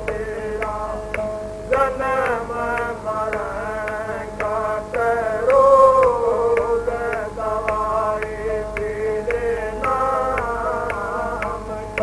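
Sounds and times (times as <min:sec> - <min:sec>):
light percussive strikes: 0:00.0 - 0:12.0
person singing a hymn: 0:00.0 - 0:12.0
steady held tones: 0:00.0 - 0:12.0.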